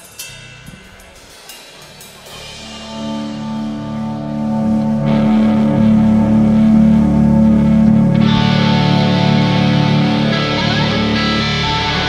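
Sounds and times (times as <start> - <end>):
live rock band playing: 0.2 - 12.0.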